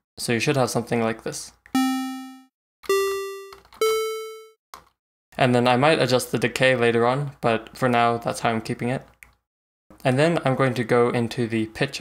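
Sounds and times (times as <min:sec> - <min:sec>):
plucky synth notes: 0:01.8 - 0:04.5.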